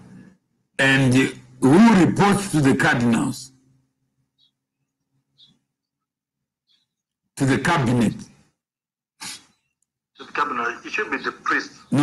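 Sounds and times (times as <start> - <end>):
man speaking: 0.8 - 3.6, 7.4 - 8.4, 10.2 - 12.0.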